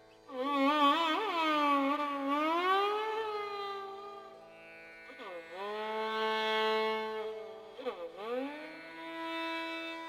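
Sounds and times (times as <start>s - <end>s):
violin melody: 0.0s - 10.0s.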